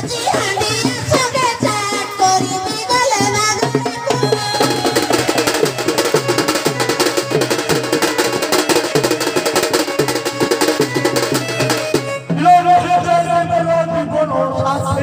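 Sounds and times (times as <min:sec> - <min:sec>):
fast dense folk drumming: 0:00.0 - 0:15.0
held melodic note: 0:04.1 - 0:12.4.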